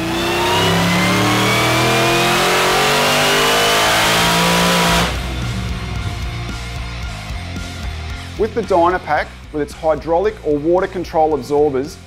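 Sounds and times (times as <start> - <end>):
engine revving on dynamometer: 0.0 - 5.9.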